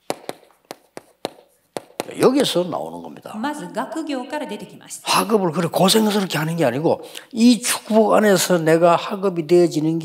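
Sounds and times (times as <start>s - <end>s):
chalk tapping on chalkboard: 0.0s - 2.3s.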